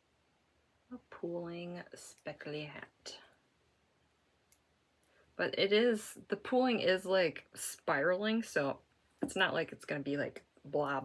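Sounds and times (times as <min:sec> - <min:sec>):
faint knitting needle click: 0:04.0 - 0:05.2.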